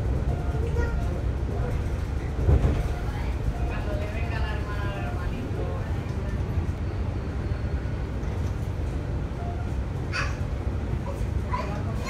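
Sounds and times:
train carriage rumbling on track: 0.0 - 12.0
people talking: 0.2 - 6.7, 11.0 - 12.0.

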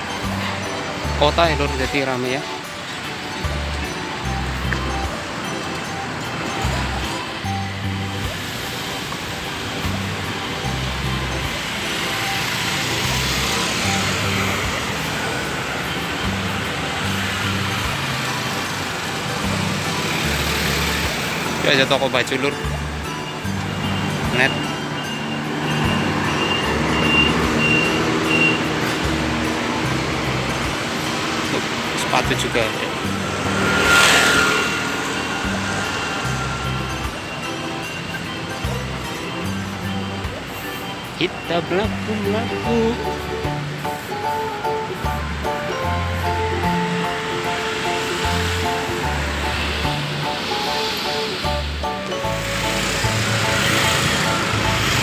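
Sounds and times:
background music with bass line: 0.0 - 55.0
cars driving past: 0.0 - 55.0
street noise: 0.0 - 55.0
vehicle passing by: 3.4 - 40.5, 41.8 - 55.0.

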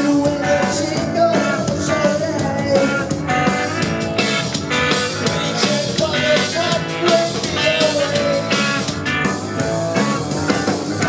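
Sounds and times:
drum kit beat: 0.0 - 11.0
electric bass: 0.0 - 11.0
electric guitar: 0.0 - 11.0.

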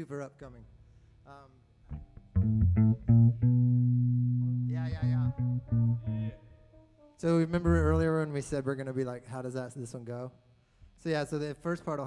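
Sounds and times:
amplified plucked string notes: 1.9 - 6.9, 7.6 - 8.3.

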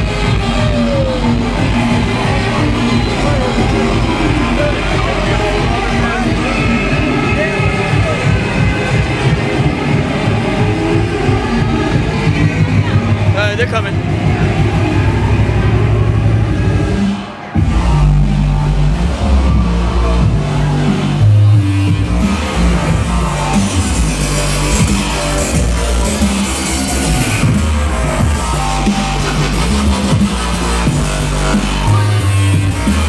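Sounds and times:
electronic dance music: 0.0 - 33.0.

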